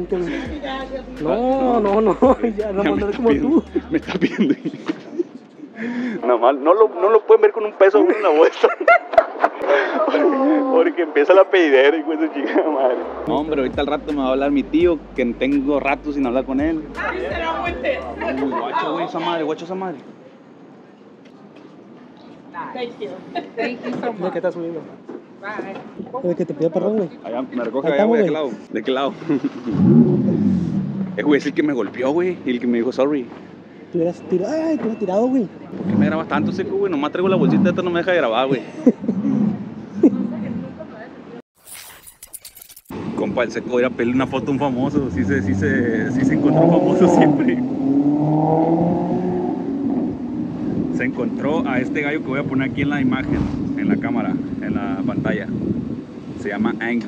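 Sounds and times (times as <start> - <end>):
car engine driving past: 29.1 - 31.7, 42.9 - 52.1, 53.1 - 53.9.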